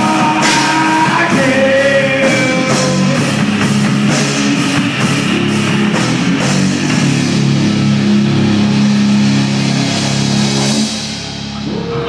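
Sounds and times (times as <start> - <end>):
drums and cymbals: 0.0 - 12.0
electric guitar and bass chord: 0.0 - 12.0.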